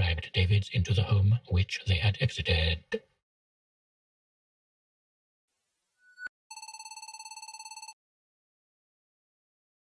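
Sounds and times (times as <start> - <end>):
faint static: 5.5 - 6.0.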